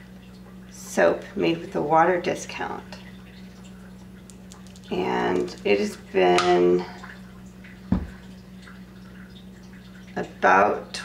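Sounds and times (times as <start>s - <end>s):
soft thump on wooden board: 7.9s - 8.2s.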